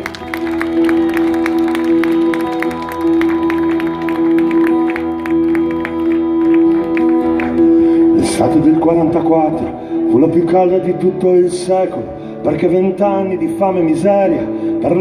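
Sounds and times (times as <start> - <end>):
live band playing: 0.0 - 11.8.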